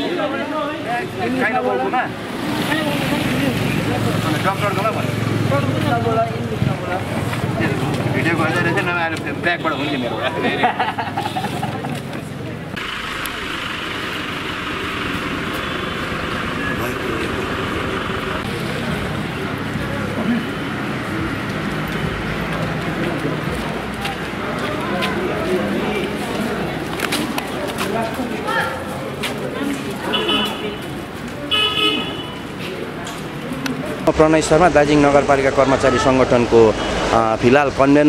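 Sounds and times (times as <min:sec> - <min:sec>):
voices in background: 0:00.0 - 0:13.6, 0:14.7 - 0:38.0
background street noise: 0:00.0 - 0:38.0
traffic noise: 0:00.0 - 0:38.0
vehicle horn toot: 0:30.1 - 0:30.8, 0:31.5 - 0:32.5.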